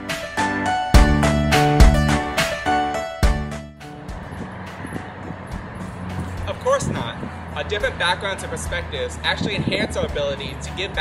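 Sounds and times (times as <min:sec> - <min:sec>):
distant road traffic rumble: 0:03.8 - 0:11.0.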